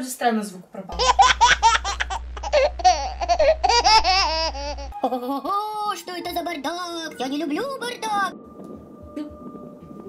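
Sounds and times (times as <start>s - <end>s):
low steady hum: 0.9s - 5.0s
high-pitched cartoon ghost laughing: 1.0s - 5.4s.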